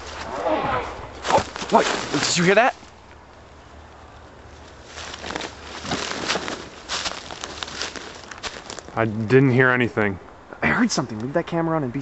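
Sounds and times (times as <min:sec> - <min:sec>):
footsteps in dry leaves: 0:01.2 - 0:03.0, 0:04.5 - 0:09.0.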